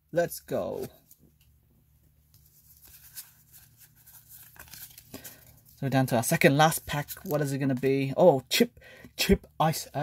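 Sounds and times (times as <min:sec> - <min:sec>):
trading cards rustling and ticking: 0:02.2 - 0:08.4.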